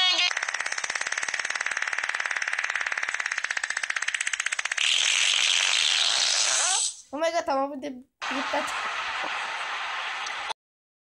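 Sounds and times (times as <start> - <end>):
fast buzzing rattle: 0.0 - 7.0.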